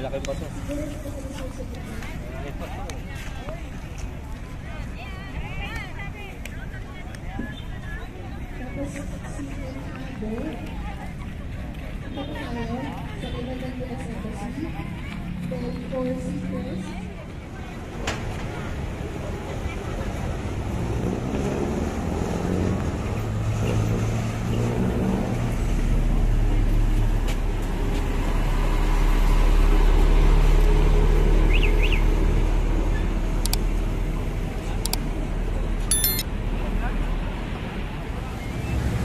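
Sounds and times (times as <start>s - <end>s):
road traffic: 0.0s - 39.0s.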